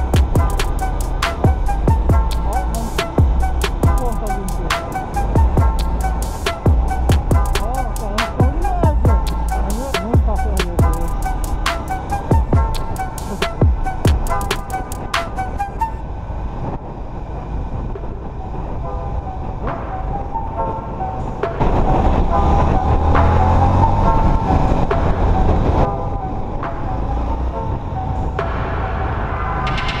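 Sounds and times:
motorcycle engine riding: 0:00.0 - 0:15.4
background music: 0:00.0 - 0:16.8, 0:17.8 - 0:30.0
wind rumble: 0:00.0 - 0:30.0.

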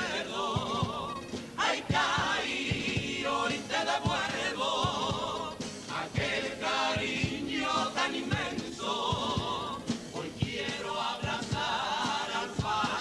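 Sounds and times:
chorus singing in harmony: 0:00.0 - 0:13.0
drum beat: 0:00.0 - 0:13.0.

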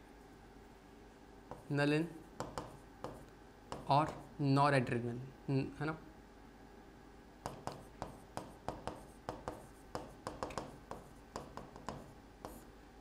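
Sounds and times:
chalk tapping and scraping on blackboard: 0:01.5 - 0:01.8, 0:02.4 - 0:04.3, 0:07.4 - 0:12.7.

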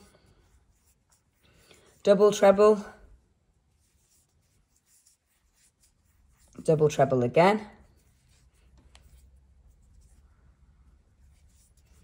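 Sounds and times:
yarn rubbing on crochet hook: 0:00.0 - 0:02.9, 0:03.6 - 0:10.4, 0:11.1 - 0:12.0.

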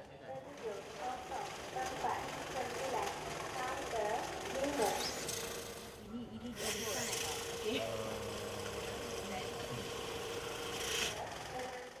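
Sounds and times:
banknote counting machine humming: 0:00.6 - 0:12.0.

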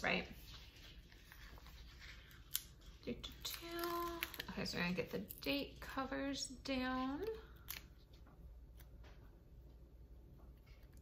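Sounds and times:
paper crinkling and rustling: 0:00.2 - 0:05.2.

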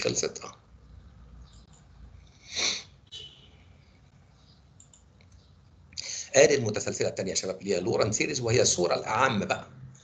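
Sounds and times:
person's sharp breath: 0:02.3 - 0:03.0.

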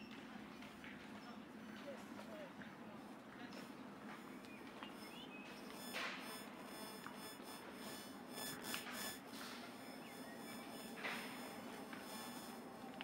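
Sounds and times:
distant traffic hum: 0:02.6 - 0:13.0
faint high chirps: 0:04.1 - 0:13.0.

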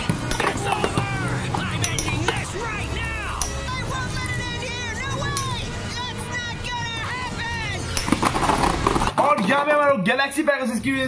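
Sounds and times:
man's voice: 0:00.4 - 0:08.0, 0:09.2 - 0:11.0.

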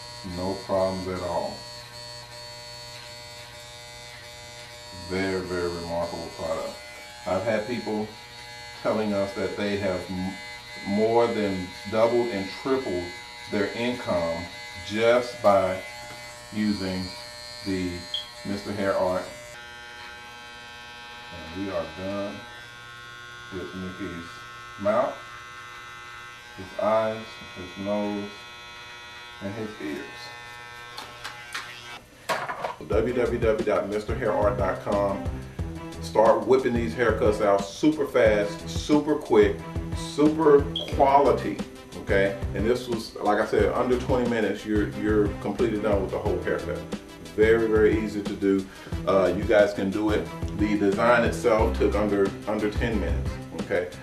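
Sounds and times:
hair trimmer buzzing: 0:00.0 - 0:54.0.

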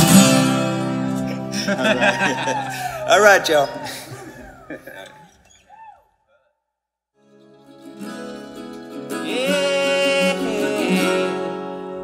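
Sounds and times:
laughter: 0:01.3 - 0:03.1, 0:04.1 - 0:05.3.

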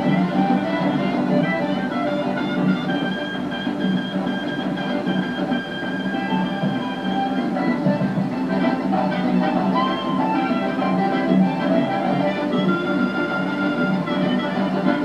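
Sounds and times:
old dance music from television: 0:00.0 - 0:15.0.

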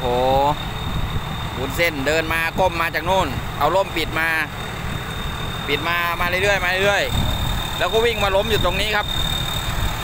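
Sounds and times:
harvester engine rumbling: 0:00.0 - 0:10.0
man speaking: 0:01.6 - 0:04.5, 0:05.7 - 0:09.1.

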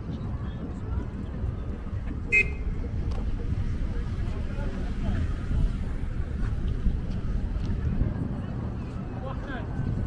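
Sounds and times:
low rumble of passing traffic: 0:00.0 - 0:10.0
car horn toot: 0:02.3 - 0:02.6.

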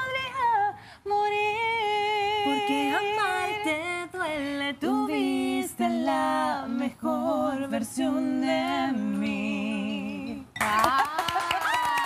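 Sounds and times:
woman singing ballad: 0:00.0 - 0:11.4.

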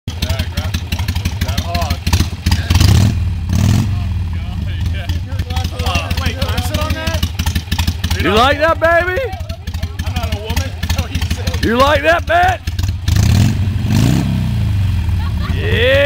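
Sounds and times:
motorcycle engine revving: 0:00.1 - 0:16.0
motorcycle engine running: 0:00.1 - 0:16.0.

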